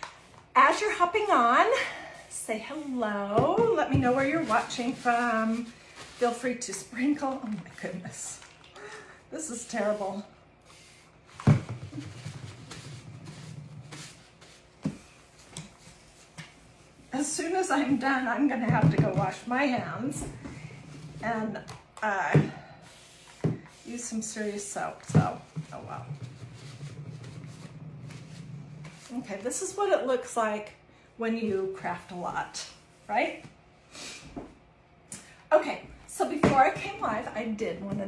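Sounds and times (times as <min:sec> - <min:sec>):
paper towel rustling: 0:04.0 - 0:08.2.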